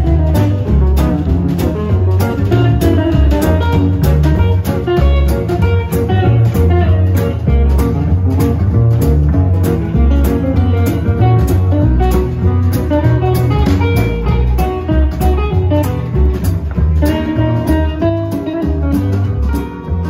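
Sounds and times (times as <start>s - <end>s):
drum kit steady beat: 0.0s - 20.0s
guitars: 0.0s - 20.0s
plucked double bass: 0.0s - 20.0s.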